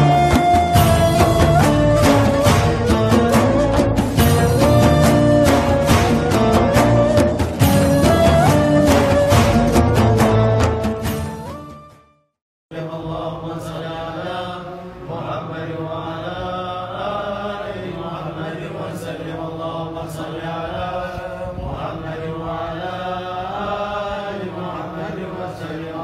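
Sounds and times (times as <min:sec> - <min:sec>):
men chanting in unison: 0:12.7 - 0:26.0.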